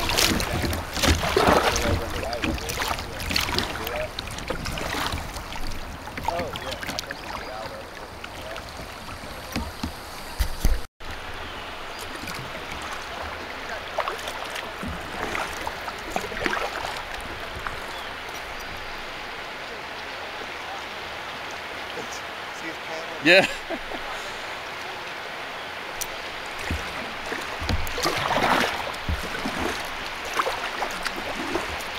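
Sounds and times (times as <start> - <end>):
paddle splashes: 0.0 - 31.9
river water rushing: 0.0 - 31.9.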